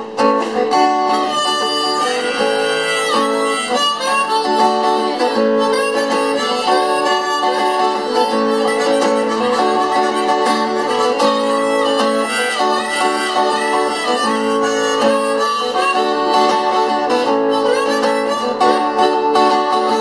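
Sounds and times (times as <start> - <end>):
harmonica melody: 0.0 - 20.0
strummed acoustic guitar: 0.0 - 20.0.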